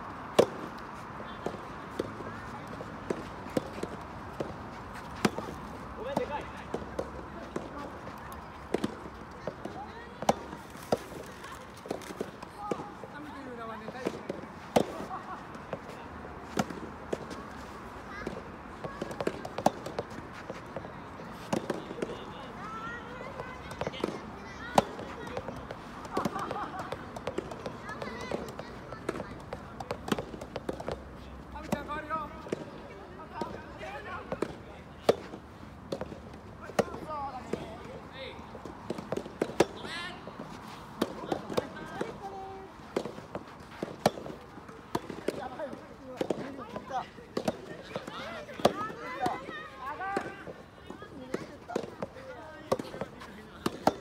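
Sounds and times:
balls bouncing on court: 0.2s - 54.0s
rackets hitting soft tennis balls: 0.2s - 54.0s.

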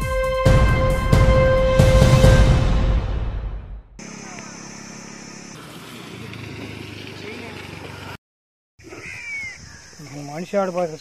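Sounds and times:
faint insect chirps: 4.0s - 5.6s, 8.8s - 11.0s
high insect drone: 4.0s - 6.4s.

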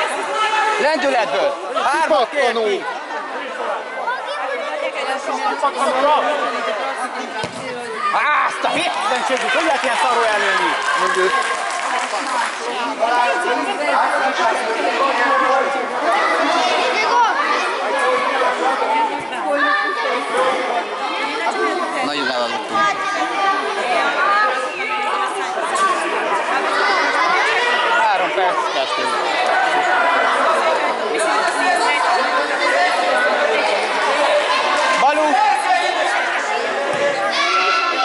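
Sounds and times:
crowd babble in a hall: 0.0s - 38.0s.

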